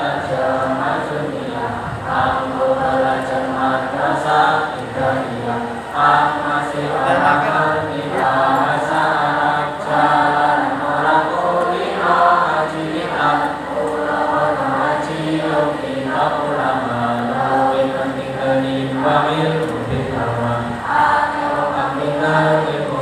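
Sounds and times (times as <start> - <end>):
choir singing: 0.0 - 23.0.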